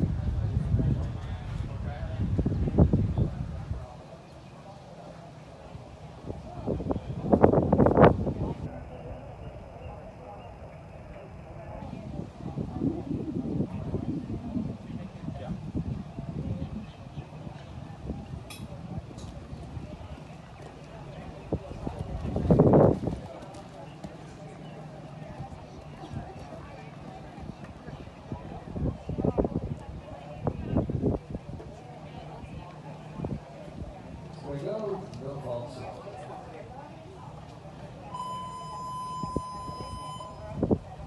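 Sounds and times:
hoofbeats cantering on sand: 15.1s - 28.3s
electronic buzzer tone: 38.1s - 40.4s.

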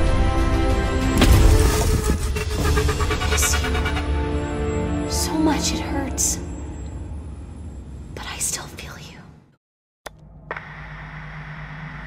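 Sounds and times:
low hum: 1.4s - 12.0s.

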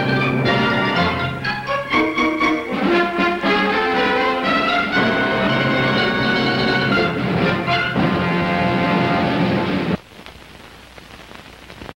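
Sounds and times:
orchestra holding a chord: 0.0s - 9.7s
film soundtrack hiss and crackle: 0.0s - 11.9s.

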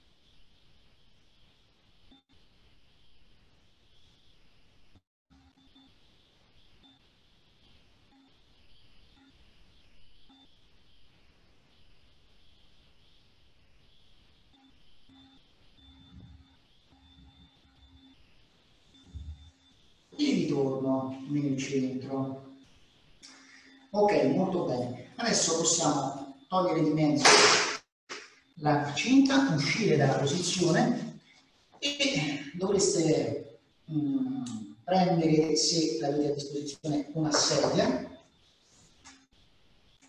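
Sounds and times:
faint short steady tones: 5.3s - 20.2s, 22.4s - 24.0s.

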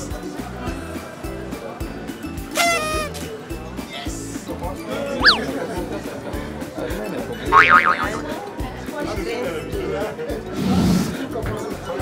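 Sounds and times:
cartoon boing sound effect: 5.2s - 5.5s, 7.5s - 8.3s.

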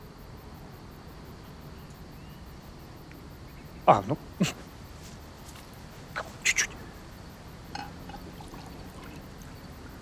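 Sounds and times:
low steady background noise: 0.0s - 10.0s
liquid pouring into cup: 7.8s - 9.3s.

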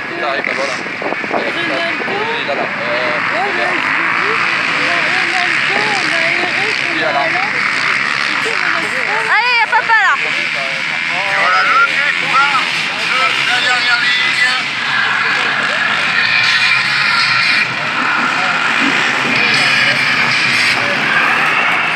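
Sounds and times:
racing quad engines revving: 0.0s - 21.9s.

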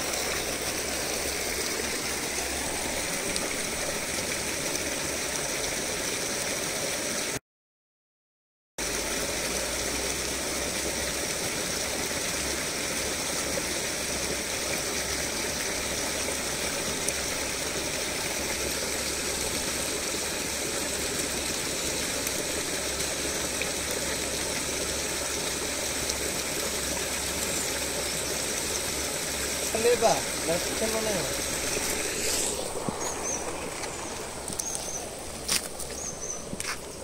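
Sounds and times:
stream water flowing: 0.0s - 7.4s, 8.8s - 37.0s.

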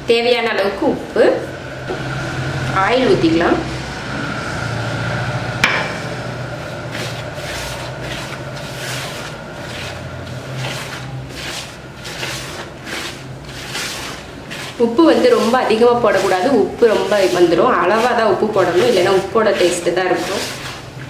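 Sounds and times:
fingers scrubbing through flour: 6.6s - 21.0s.

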